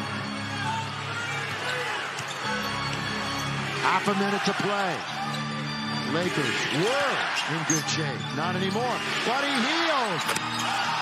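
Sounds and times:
crowd noise: 0.0 - 11.0
shoe squeaks on court: 1.6 - 3.0.

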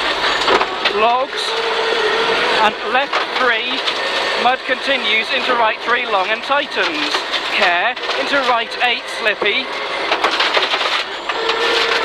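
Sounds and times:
car engine: 0.0 - 12.0
road noise: 0.0 - 12.0
gravel rattling against car underbody: 2.6 - 12.0.

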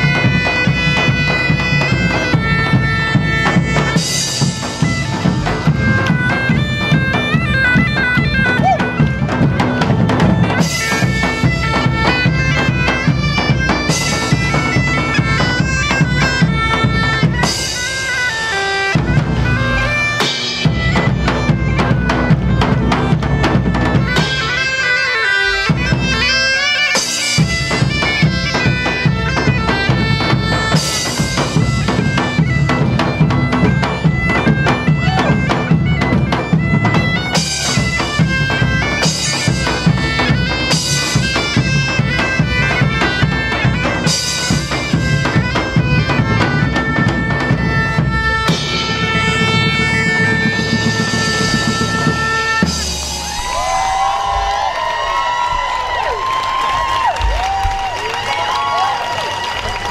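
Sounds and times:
bagpipes playing melody: 0.0 - 53.8
big drums: 0.0 - 59.9.

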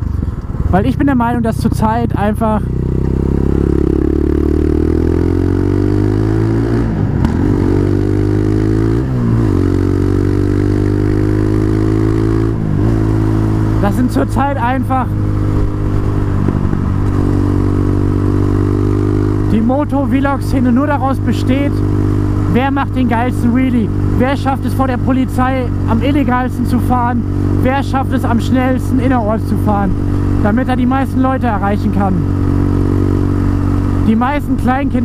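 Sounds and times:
quad bike engine running: 0.0 - 35.0.

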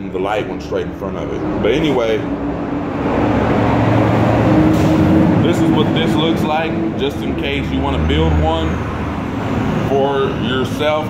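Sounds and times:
low machine drone: 0.0 - 9.0.

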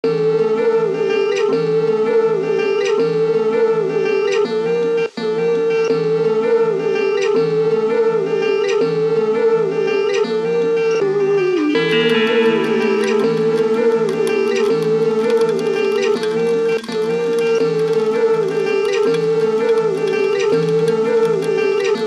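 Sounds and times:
plucked string instrument pattern: 11.7 - 22.0
sustained tone: 11.8 - 21.9.

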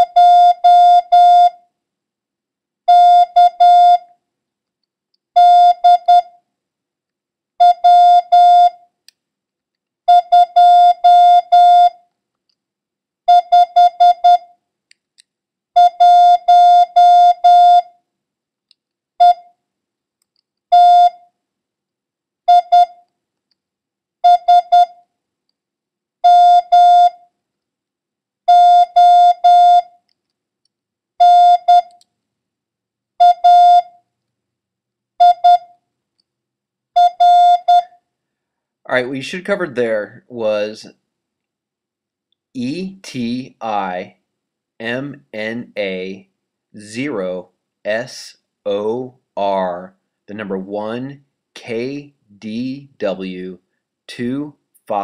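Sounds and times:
morse code beeping: 5.4 - 6.3, 10.1 - 12.0, 15.8 - 17.9, 24.2 - 25.0, 26.2 - 27.2, 28.5 - 29.9, 31.2 - 32.0, 33.2 - 33.9, 35.2 - 35.7, 37.0 - 38.0.

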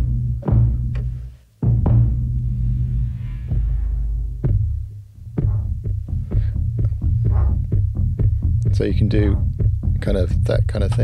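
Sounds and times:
heavy bass throb: 0.0 - 11.0
cinematic electronic loop: 1.7 - 11.0
percussive hits: 3.4 - 10.0.

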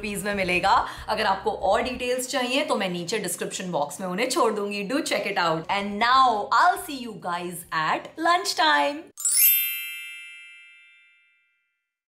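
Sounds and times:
bright bell-like chime: 9.2 - 12.0.

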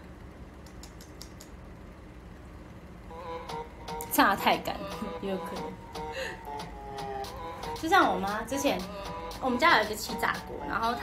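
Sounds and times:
low room hum: 0.0 - 11.0
light quick clicks: 0.6 - 1.6.

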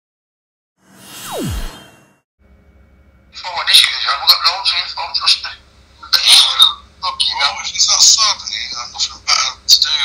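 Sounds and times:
person talking over phone line: 3.4 - 10.0.

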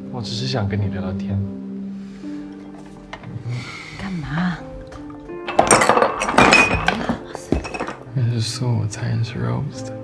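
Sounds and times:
background music: 0.0 - 10.0
glassware clinking: 5.5 - 8.1.

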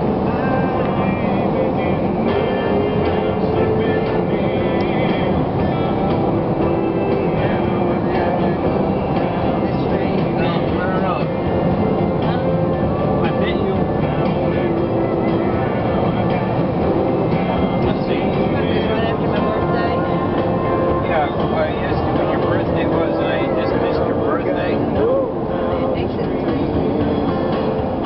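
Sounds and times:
country music on car radio: 0.0 - 28.0
road and engine noise: 0.0 - 28.0.

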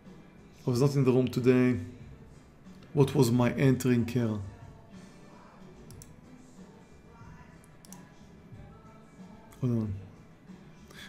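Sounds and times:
computer mouse clicks: 5.9 - 6.2, 7.6 - 8.1.

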